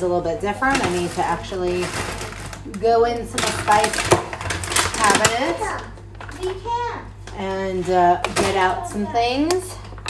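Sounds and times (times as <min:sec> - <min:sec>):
person talking: 0:07.4 - 0:09.8.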